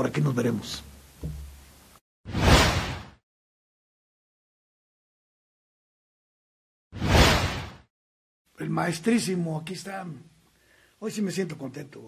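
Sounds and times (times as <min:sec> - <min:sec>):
whoosh sound effect: 0:07.0 - 0:07.9.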